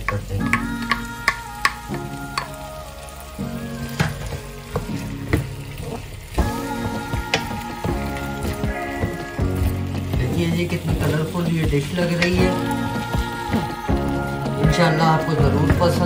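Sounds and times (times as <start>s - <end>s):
food sizzling in a pan: 0.0s - 16.0s.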